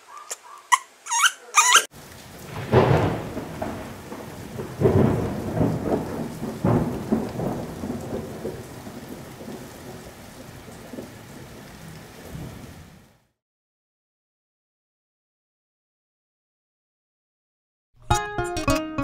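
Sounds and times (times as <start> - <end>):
steady rain: 1.9 - 13.4
thunder rolling: 2.0 - 13.0.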